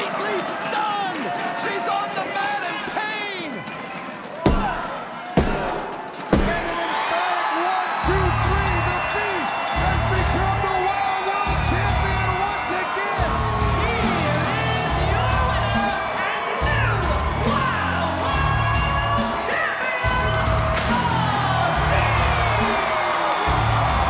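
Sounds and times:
crowd shouting and cheering: 0:00.0 - 0:24.0
loud music with pulsing beat: 0:08.1 - 0:24.0.

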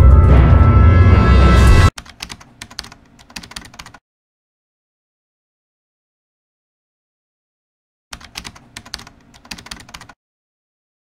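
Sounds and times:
keyboard typing clicks: 0:02.0 - 0:04.0, 0:08.1 - 0:10.2.

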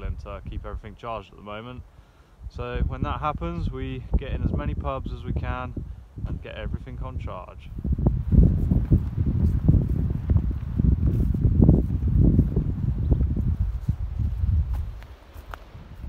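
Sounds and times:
wind buffeting microphone: 0:02.4 - 0:16.0
footsteps on dirt path: 0:07.7 - 0:16.0.

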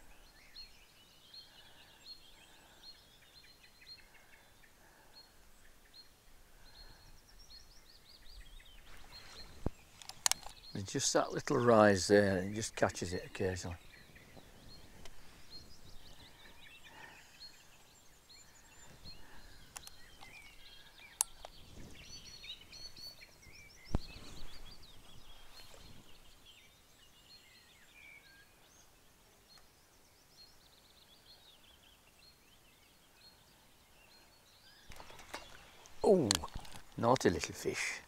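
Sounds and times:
songbirds singing: 0:00.0 - 0:38.0
sharp clicks: 0:10.0 - 0:10.6.

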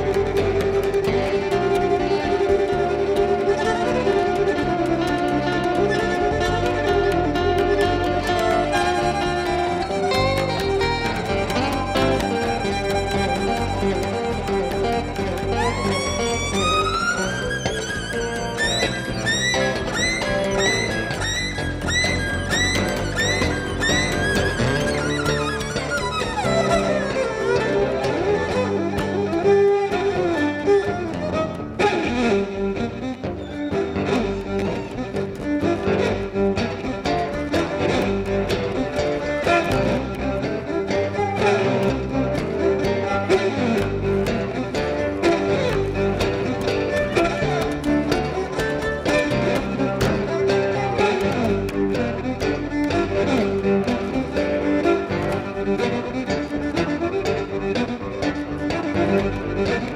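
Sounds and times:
amplified violin lead: 0:00.0 - 0:59.9
bass: 0:00.0 - 0:59.9.

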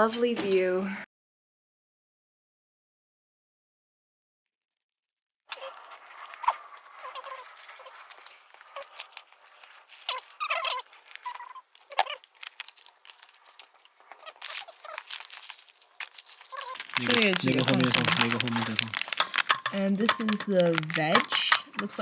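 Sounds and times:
food packets crinkling and tearing: 0:05.5 - 0:22.0
water pouring from plastic bottle: 0:05.5 - 0:22.0
clicks against plastic containers: 0:16.8 - 0:22.0.

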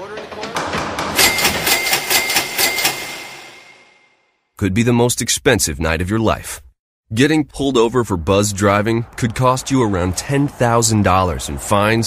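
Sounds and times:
steady high tone: 0:01.2 - 0:04.2.

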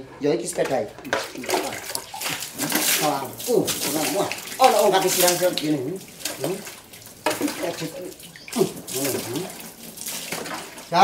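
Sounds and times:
water splashing from bucket: 0:00.6 - 0:11.0.

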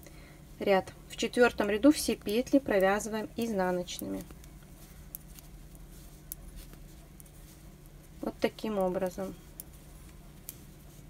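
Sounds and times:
low steady hum: 0:00.0 - 0:11.0
yarn rustling: 0:01.5 - 0:11.0
knitting needles clicking: 0:01.9 - 0:10.7.

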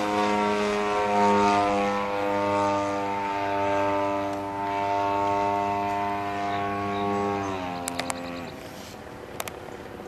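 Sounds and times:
model plane engine buzzing drone: 0:00.0 - 0:10.0.

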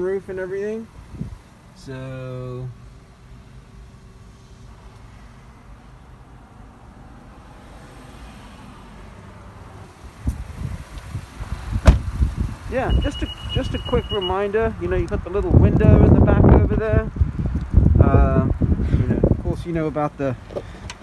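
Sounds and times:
car door shutting: 0:11.7 - 0:12.3
high steady beep: 0:12.8 - 0:14.6.

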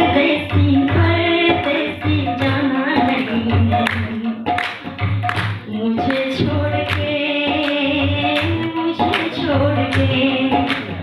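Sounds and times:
woman singing: 0:00.0 - 0:04.6, 0:05.6 - 0:11.0
tabla drumming: 0:00.0 - 0:11.0.

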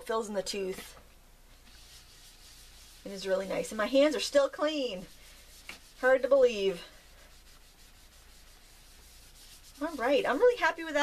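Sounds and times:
woman speaking: 0:00.0 - 0:01.0, 0:03.0 - 0:05.2, 0:06.0 - 0:07.0, 0:09.8 - 0:11.0
hand rubbing pastel on paper: 0:01.5 - 0:11.0.

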